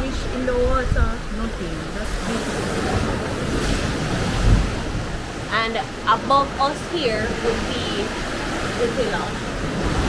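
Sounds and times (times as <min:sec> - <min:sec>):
waves on rocky shore: 0:00.0 - 0:10.0
wind buffeting microphone: 0:00.0 - 0:10.0.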